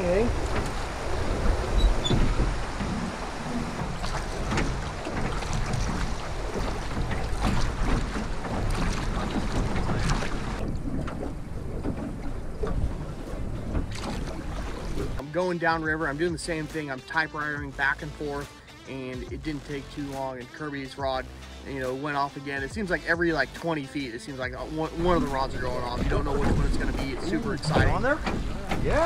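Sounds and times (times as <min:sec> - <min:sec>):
wind buffeting microphone: 0:00.0 - 0:15.2
water splashing against boat: 0:00.0 - 0:29.0
knocks on boat: 0:00.3 - 0:15.2, 0:25.1 - 0:29.0.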